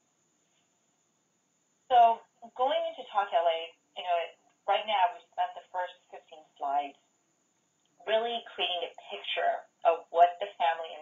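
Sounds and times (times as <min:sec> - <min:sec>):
woman speaking over telephone: 0:01.9 - 0:06.9, 0:08.1 - 0:11.0.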